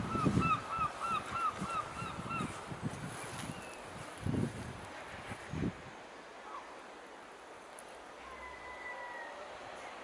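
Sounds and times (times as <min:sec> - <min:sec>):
bird calling: 0:00.0 - 0:02.6.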